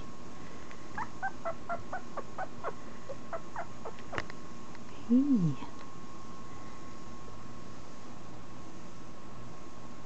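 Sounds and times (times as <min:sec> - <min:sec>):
puppy squeaking: 0:01.0 - 0:04.2.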